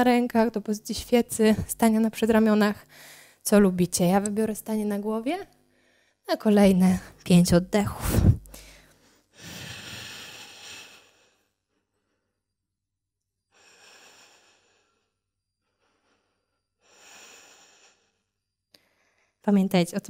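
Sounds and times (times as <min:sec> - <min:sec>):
woman breathing: 0:02.8 - 0:03.4, 0:05.7 - 0:06.3, 0:08.1 - 0:12.6, 0:13.5 - 0:19.4.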